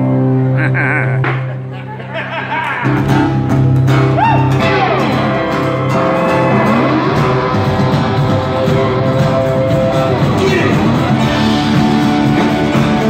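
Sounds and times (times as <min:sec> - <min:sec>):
live rock band playing: 0:00.0 - 0:13.0
sliding guitar notes: 0:00.0 - 0:13.0.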